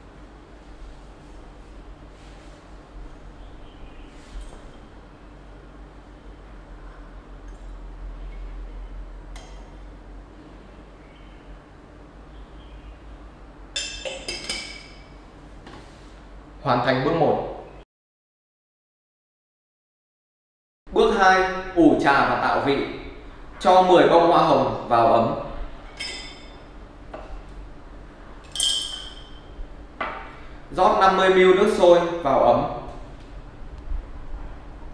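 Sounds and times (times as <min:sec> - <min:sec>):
glass clinking: 0:13.8 - 0:15.1, 0:25.9 - 0:26.7, 0:28.4 - 0:29.6
glass lid clinking on pot: 0:28.5 - 0:29.4.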